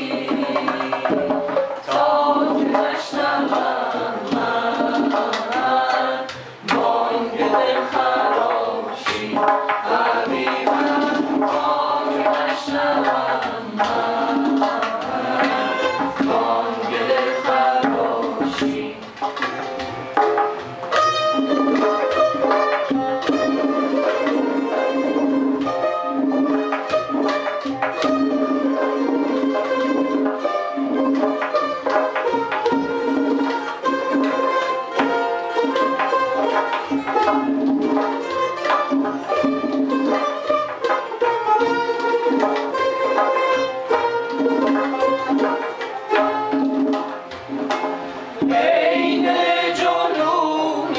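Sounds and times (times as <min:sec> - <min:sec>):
goblet drum rhythm: 0:00.0 - 0:50.9
plucked lute strokes: 0:00.0 - 0:50.9.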